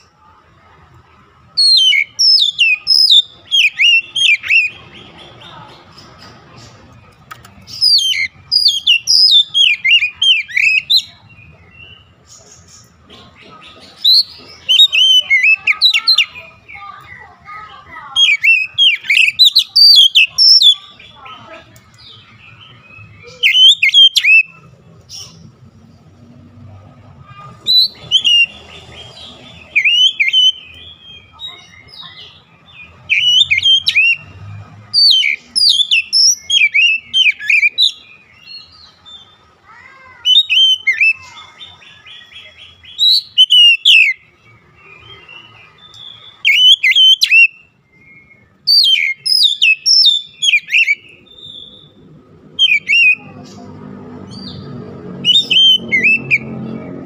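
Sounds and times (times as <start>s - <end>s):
bird singing whistled notes: 1.6s - 5.0s, 7.6s - 11.2s, 14.0s - 17.2s, 18.1s - 21.3s, 22.0s - 24.6s, 27.6s - 34.4s, 35.0s - 39.4s, 40.3s - 53.4s, 54.3s - 56.7s.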